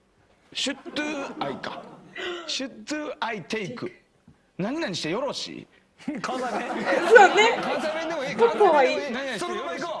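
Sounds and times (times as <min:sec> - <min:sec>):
laughter: 0:06.0 - 0:08.4.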